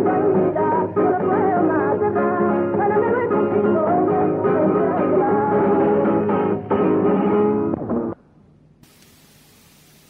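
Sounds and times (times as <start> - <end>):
record surface hiss: 6.5 - 10.0.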